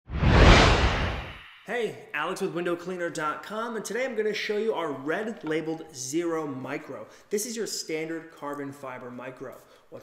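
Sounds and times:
whoosh: 0.1 - 2.1.

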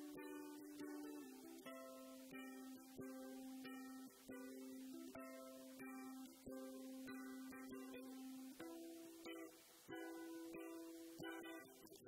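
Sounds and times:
fingerstyle ukulele melody: 0.0 - 12.0.

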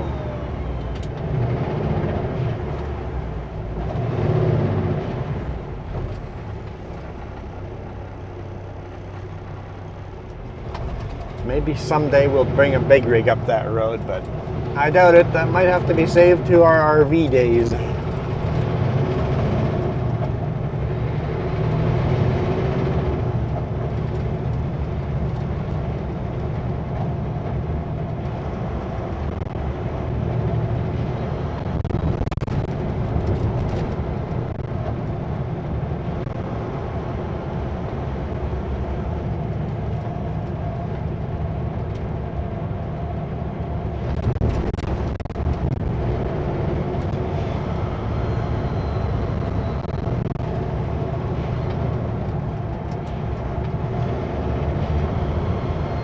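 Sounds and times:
road noise: 0.0 - 56.0
truck diesel engine droning: 0.0 - 56.0.

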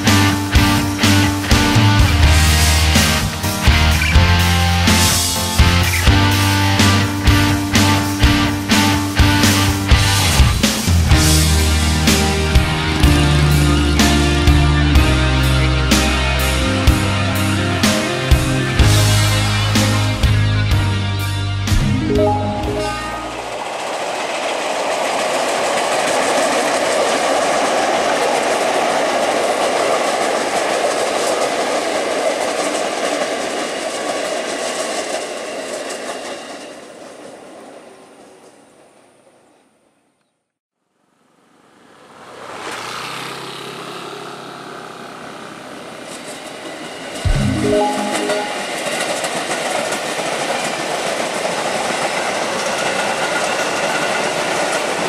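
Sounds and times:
train wheels rolling on rails: 23.2 - 39.7, 41.9 - 55.0.

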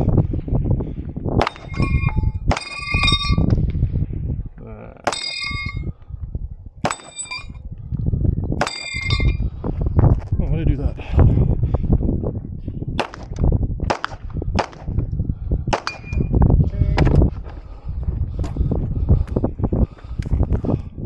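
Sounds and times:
pistol shots: 1.4 - 1.8, 13.0 - 14.9, 15.7 - 16.1
steel target ringing clang: 1.4 - 3.5, 5.1 - 5.9, 6.8 - 7.6, 8.6 - 9.4.

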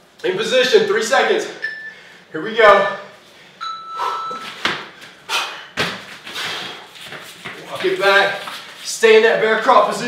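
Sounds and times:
feet thudding on gym mats: 4.3 - 8.8.

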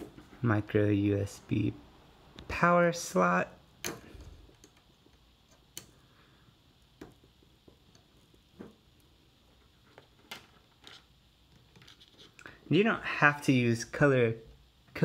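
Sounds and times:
cables being handled: 6.8 - 12.7.

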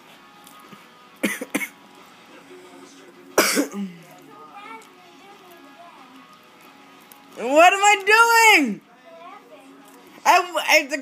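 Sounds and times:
faint television sound: 0.0 - 11.0.

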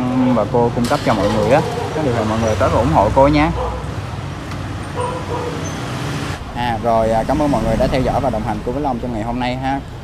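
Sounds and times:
motorbikes passing on road: 0.0 - 10.0.

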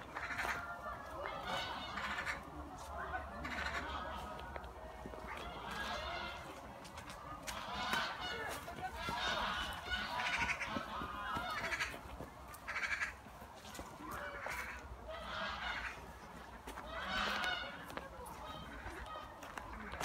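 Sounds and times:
geese honking: 0.0 - 20.0.

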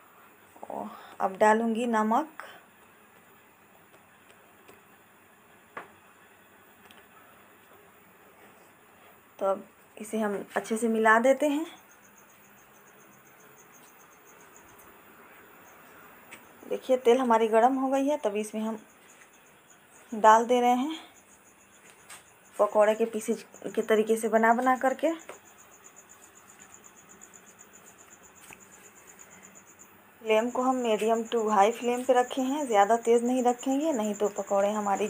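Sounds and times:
cricket chirping: 9.5 - 35.0.

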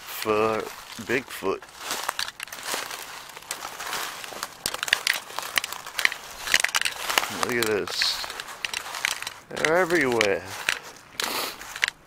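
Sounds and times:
footsteps crunching dry leaves: 0.0 - 12.0
twigs snapping: 0.0 - 12.0.

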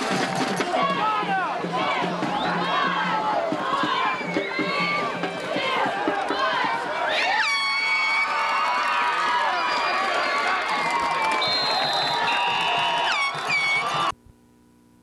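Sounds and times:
spectators shouting and cheering: 0.0 - 14.1.

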